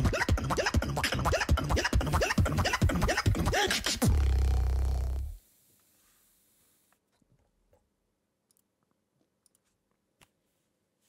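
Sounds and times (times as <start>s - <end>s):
beatboxing kick drums and clicks: 0.0s - 5.3s
vocal scratch sounds: 0.0s - 5.4s.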